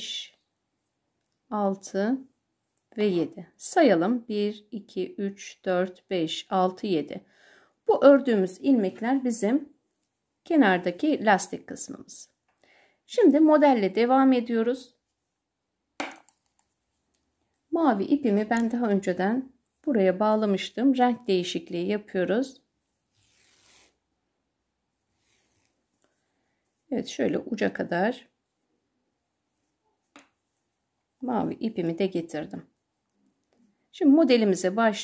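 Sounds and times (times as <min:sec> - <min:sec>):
knitting needle tap: 0:16.0 - 0:16.7, 0:30.1 - 0:30.4.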